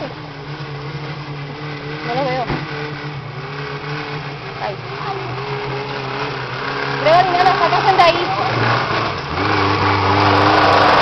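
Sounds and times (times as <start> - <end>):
vehicle engine pulling: 0.0 - 11.0.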